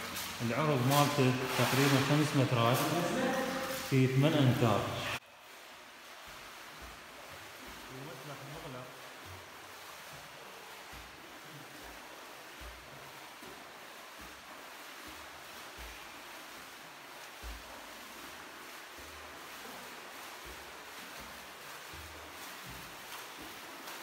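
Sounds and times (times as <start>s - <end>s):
pool water splashing: 0.0s - 24.0s.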